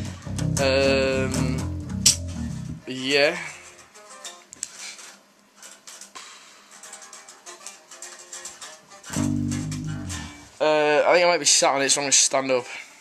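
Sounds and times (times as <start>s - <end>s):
guitar plucked notes: 0.0s - 2.9s, 9.0s - 10.6s
low guitar note: 0.0s - 2.9s, 9.1s - 10.5s.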